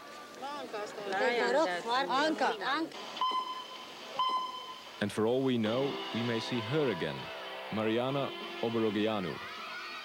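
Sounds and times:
high held tone: 5.7s - 9.1s.

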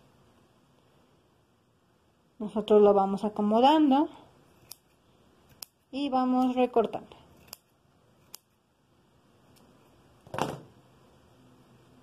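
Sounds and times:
scissors snipping yarn: 4.4s - 8.6s.

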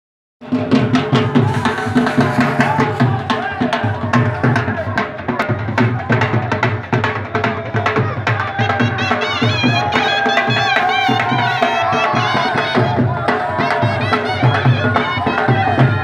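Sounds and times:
crowd voices: 0.4s - 16.0s
drum beaten fast: 0.4s - 16.0s.

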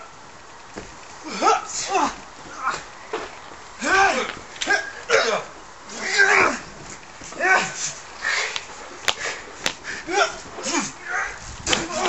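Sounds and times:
high-pitched fighting yells: 3.8s - 6.6s.

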